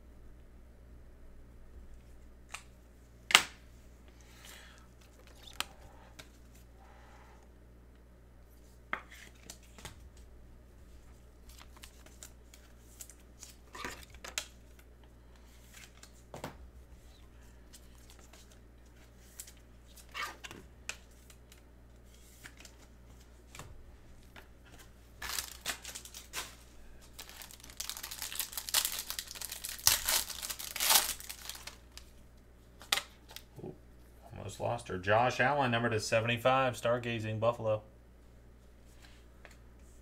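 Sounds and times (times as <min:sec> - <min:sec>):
wrapper crinkling and tearing: 0:25.2 - 0:32.1.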